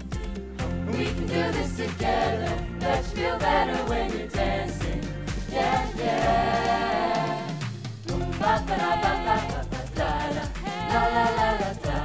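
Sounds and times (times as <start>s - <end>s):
pop backing track: 0.0s - 12.0s
group of voices singing: 0.6s - 12.0s.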